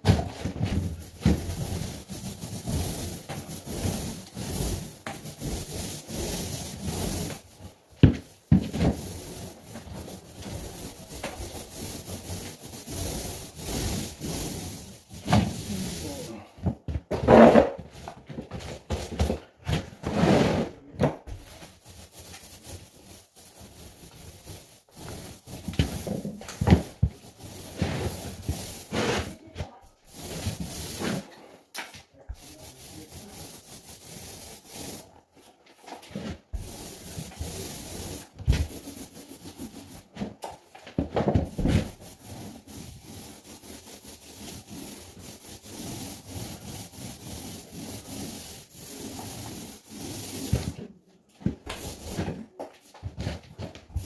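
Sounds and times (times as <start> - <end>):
paint roller rolling over wall: 0.0 - 54.0.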